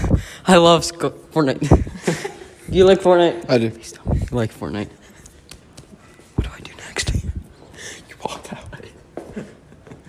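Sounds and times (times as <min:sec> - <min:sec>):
men whispering: 0:02.7 - 0:09.2.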